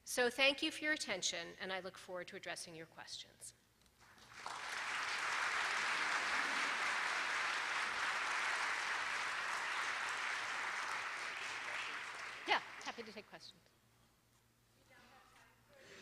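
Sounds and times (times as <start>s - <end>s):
audience applauding: 4.0s - 13.3s.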